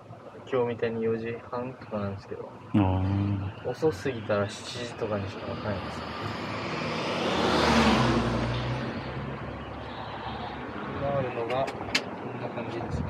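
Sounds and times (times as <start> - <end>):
vehicle passing on street: 3.4 - 13.0.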